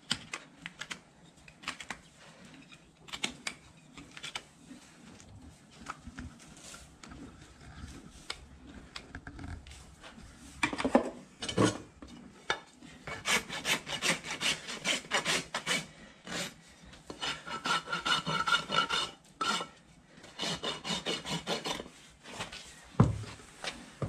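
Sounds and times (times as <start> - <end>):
rasp filing a hoof: 12.7 - 22.5.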